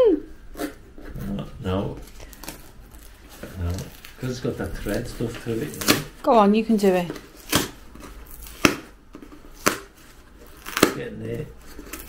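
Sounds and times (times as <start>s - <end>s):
tape ripping off cardboard: 2.2s - 6.2s, 7.1s - 12.0s.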